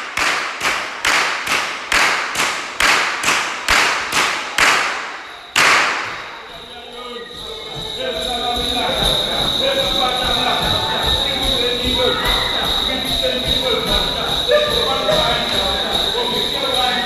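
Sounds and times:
whip cracking in a hall: 0:00.0 - 0:06.3.

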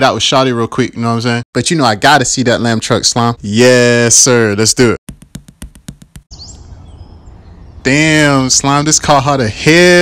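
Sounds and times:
man talking: 0:00.0 - 0:05.0, 0:07.9 - 0:10.0
faint bird chirps: 0:06.3 - 0:08.9.

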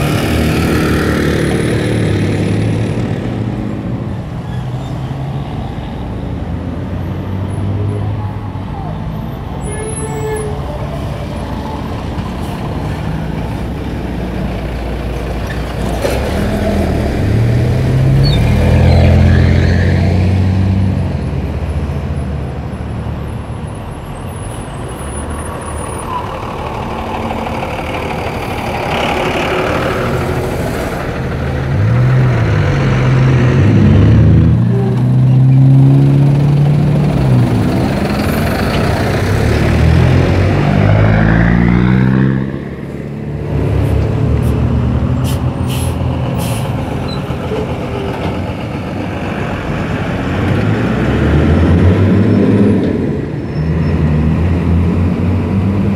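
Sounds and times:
buses and cars driving past: 0:00.0 - 0:55.9.

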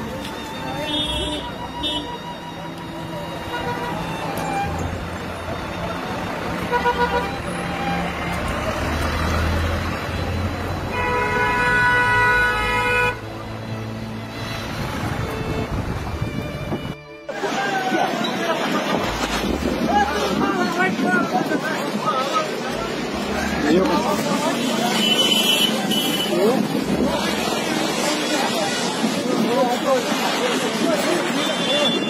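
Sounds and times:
road traffic noise: 0:00.0 - 0:32.0.

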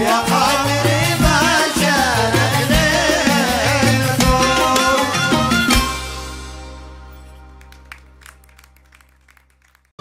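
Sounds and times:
live band music: 0:00.0 - 0:09.0
audience clapping: 0:07.4 - 0:10.0.

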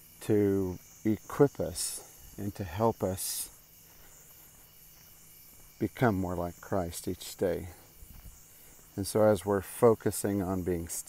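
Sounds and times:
crickets chirping: 0:00.0 - 0:11.0
person speaking: 0:00.2 - 0:03.6, 0:05.8 - 0:07.9, 0:08.9 - 0:11.0.

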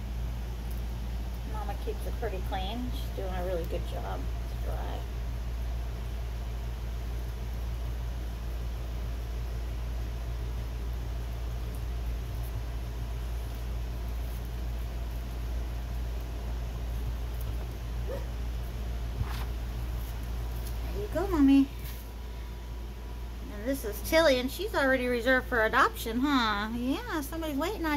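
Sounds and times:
steady low hum: 0:00.0 - 0:27.9.

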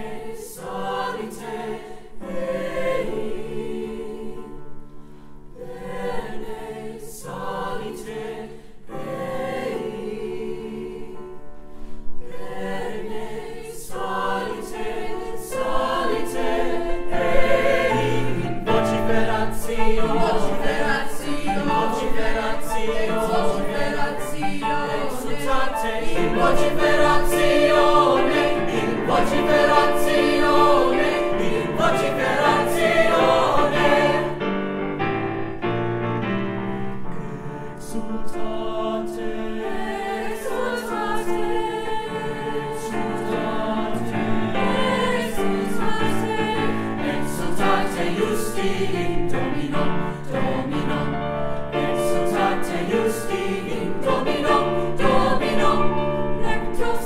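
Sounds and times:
mixed-voice choir singing: 0:00.0 - 0:35.6, 0:36.8 - 0:57.0.

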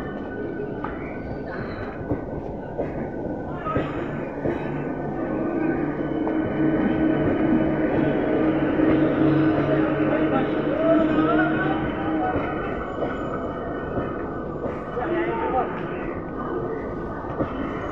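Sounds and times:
train wheels rumbling on rails: 0:00.0 - 0:17.9.

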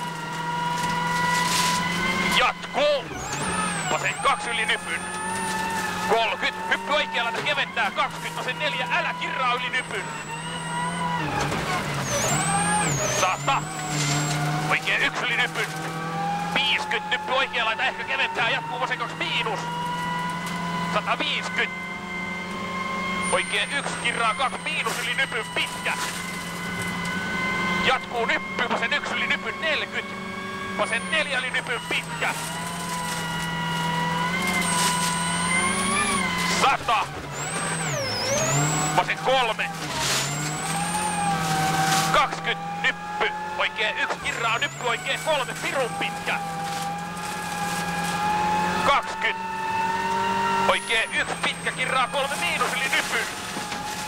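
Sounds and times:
rally car engine at speed: 0:00.0 - 0:54.0.

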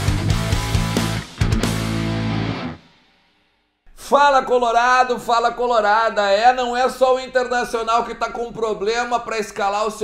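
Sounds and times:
rock jingle with electric guitar: 0:00.0 - 0:03.2.

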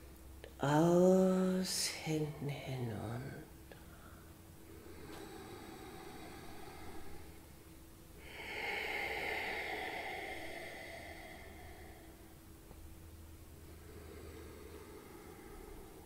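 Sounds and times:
woman breathing: 0:03.7 - 0:16.0.

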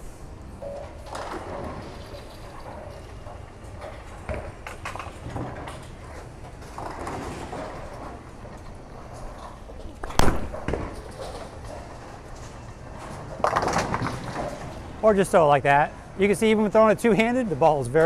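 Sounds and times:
bowling ball striking pins: 0:09.9 - 0:12.0.

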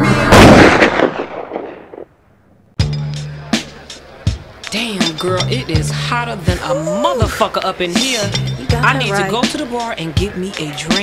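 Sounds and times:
gunshot-like blast with echo: 0:00.2 - 0:02.1
hip hop track: 0:02.8 - 0:11.0.

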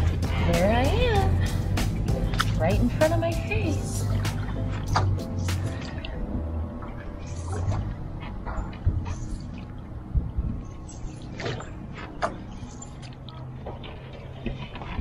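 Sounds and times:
canoe paddle splashing water: 0:00.0 - 0:09.9, 0:11.0 - 0:15.0.

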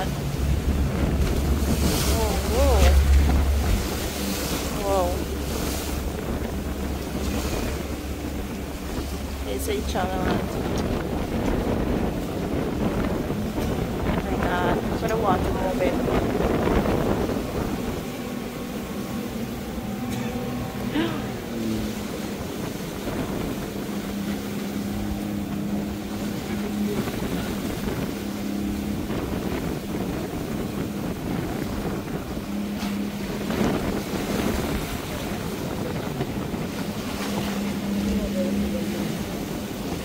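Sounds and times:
motorboat engine drone: 0:00.0 - 0:40.0
water splashing against hull: 0:00.0 - 0:40.0
wind buffeting microphone: 0:00.0 - 0:40.0.

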